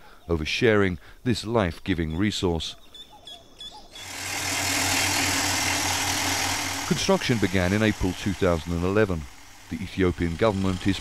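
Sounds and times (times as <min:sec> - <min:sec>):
drilling rig engine running: 0:04.0 - 0:11.0
continuous hiss: 0:04.3 - 0:11.0.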